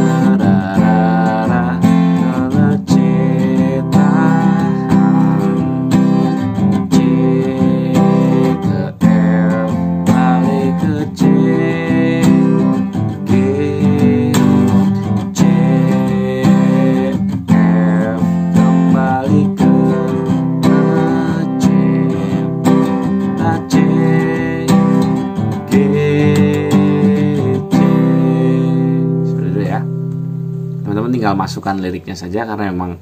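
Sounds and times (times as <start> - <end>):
acoustic guitar strumming: 0.0 - 32.0.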